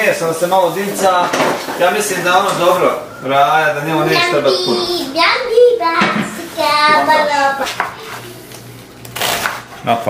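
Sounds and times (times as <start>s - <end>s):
kitchen utensils clattering: 0.8s - 2.8s.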